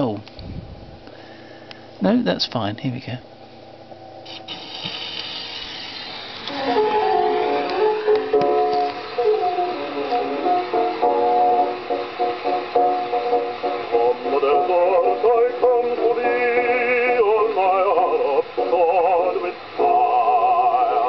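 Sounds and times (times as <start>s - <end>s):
gramophone record ballad: 4.2s - 21.0s.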